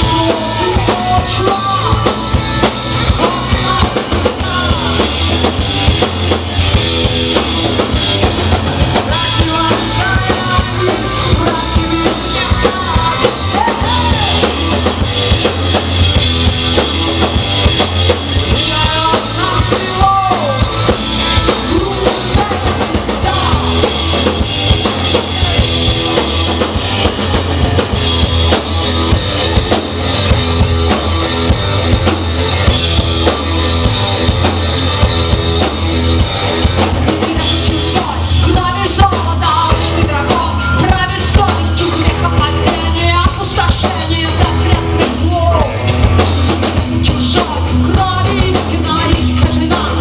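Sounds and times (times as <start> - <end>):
drum kit: 0.0 - 50.0
heavy steady bass: 0.0 - 50.0
live rock band playing loudly: 0.0 - 50.0.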